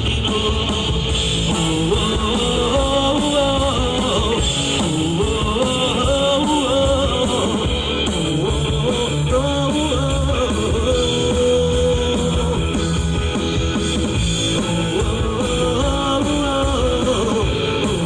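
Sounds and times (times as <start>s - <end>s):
man singing lead vocal: 0.0s - 18.0s
rock band playing: 0.0s - 18.0s.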